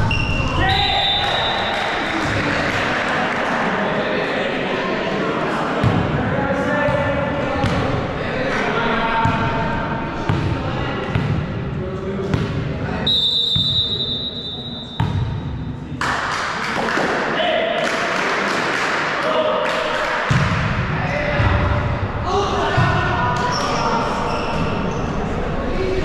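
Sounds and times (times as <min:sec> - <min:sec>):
high whistle-like tone: 0:00.0 - 0:01.8, 0:13.1 - 0:15.1
boys calling and chatting: 0:00.0 - 0:14.9, 0:20.9 - 0:26.0.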